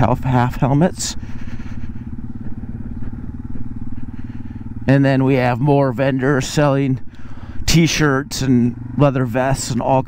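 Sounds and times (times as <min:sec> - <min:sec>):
motorcycle engine running at low speed: 0:00.0 - 0:10.0.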